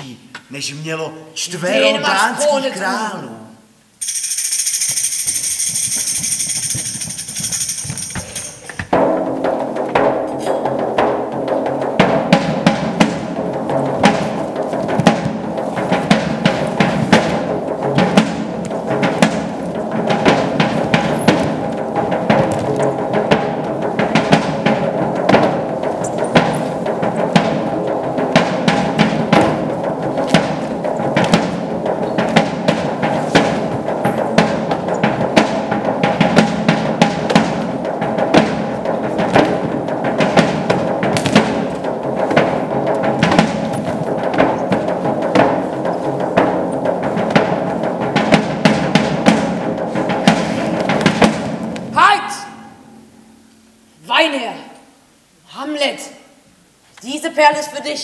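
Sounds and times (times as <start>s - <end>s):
drum strikes: 3.8s - 55.3s.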